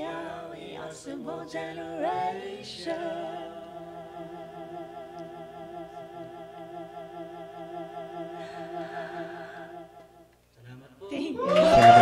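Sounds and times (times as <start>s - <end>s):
low steady tone: 3.6s - 10.4s
person humming with vibrato: 3.7s - 10.3s.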